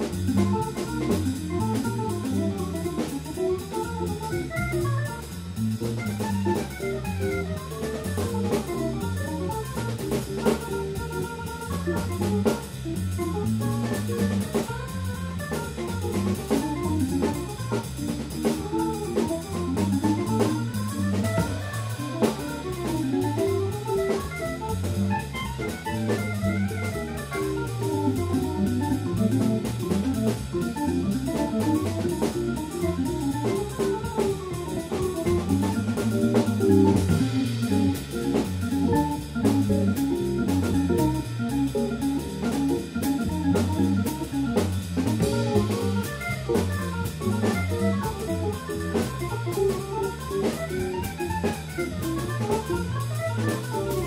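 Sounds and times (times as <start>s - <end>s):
drums: 0.0s - 54.0s
organ: 0.0s - 54.0s.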